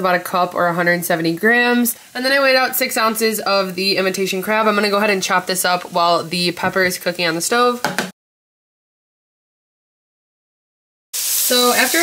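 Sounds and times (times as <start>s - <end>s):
woman's voice: 0.0s - 7.9s, 11.5s - 12.0s.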